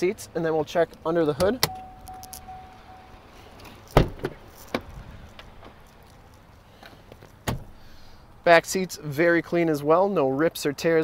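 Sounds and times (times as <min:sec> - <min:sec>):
car door thud: 0:03.9 - 0:05.8, 0:07.4 - 0:07.8.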